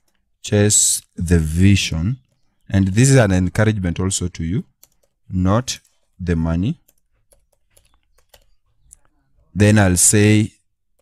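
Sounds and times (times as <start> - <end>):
keystrokes on computer keyboard: 4.8 - 5.2, 6.8 - 9.1.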